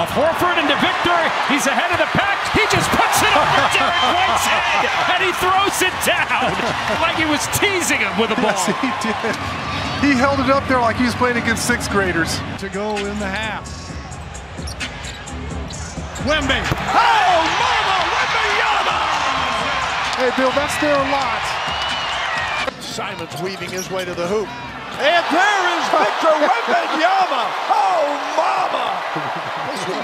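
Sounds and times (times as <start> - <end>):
arena noise: 0.0 - 30.0
man exclaiming excitedly: 0.2 - 9.2, 16.9 - 19.5, 25.2 - 29.2.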